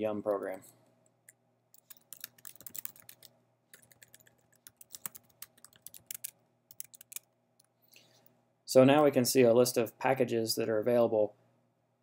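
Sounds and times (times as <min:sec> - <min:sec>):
keyboard typing: 0:01.8 - 0:07.7.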